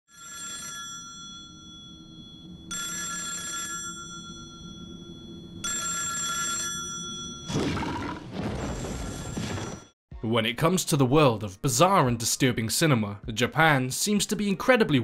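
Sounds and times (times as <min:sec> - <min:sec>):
telephone bell ringing: 0:00.1 - 0:07.6, 0:08.4 - 0:10.0.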